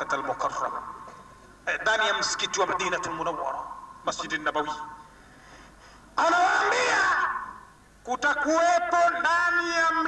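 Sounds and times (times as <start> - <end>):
man calling out with echo: 6.2 - 10.0.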